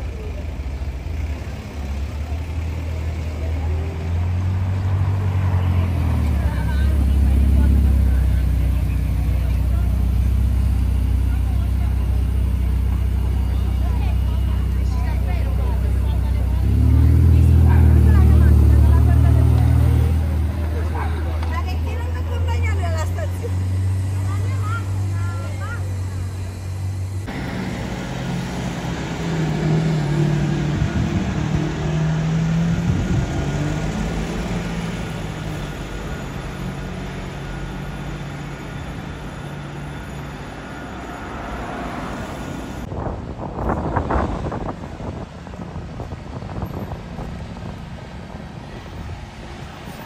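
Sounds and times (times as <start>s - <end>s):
car engine idling: 0.0s - 32.2s
car engine revving: 15.7s - 42.9s.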